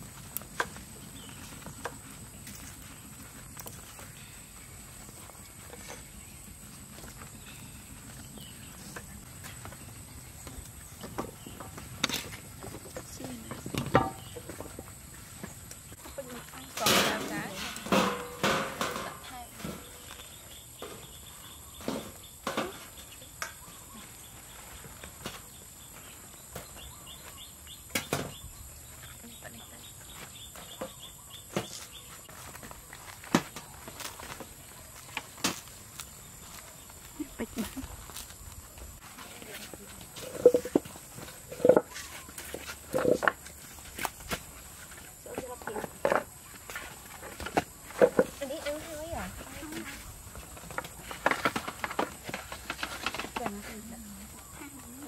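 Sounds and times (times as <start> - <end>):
voices: 12.9 - 14.8, 16.0 - 20.2, 29.1 - 30.0, 39.0 - 40.8, 45.2 - 46.3, 48.0 - 50.1, 53.3 - 55.0.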